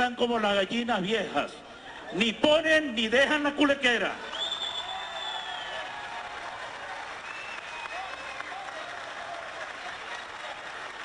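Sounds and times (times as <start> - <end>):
legislators applauding: 4.3 - 11.0.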